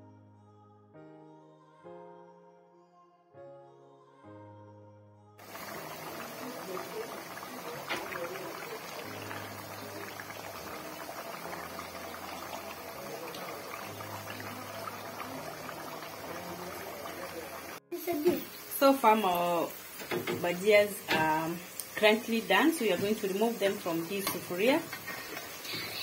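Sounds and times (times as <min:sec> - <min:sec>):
soft background music: 0:00.0 - 0:26.0
potatoes sizzling in hot oil: 0:05.4 - 0:26.0.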